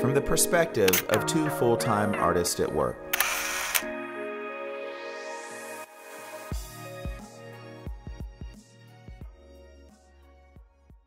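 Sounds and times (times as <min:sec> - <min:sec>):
background music chords: 0:00.0 - 0:11.0
camera shutter click: 0:03.2 - 0:03.9.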